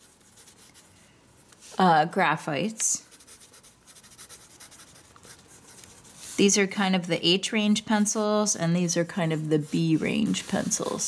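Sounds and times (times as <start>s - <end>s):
pencil writing on paper: 3.1s - 6.1s.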